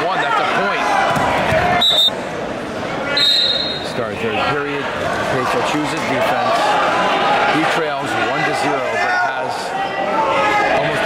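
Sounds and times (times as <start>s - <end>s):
crowd chatter: 0.0s - 11.0s
referee's whistle blast: 1.8s - 2.2s, 3.2s - 4.0s.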